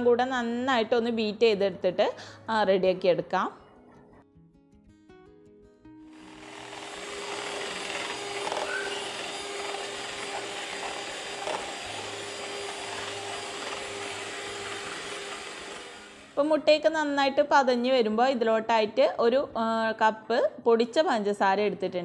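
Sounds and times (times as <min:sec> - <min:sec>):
electric hand mixer whisking: 0:06.1 - 0:16.4.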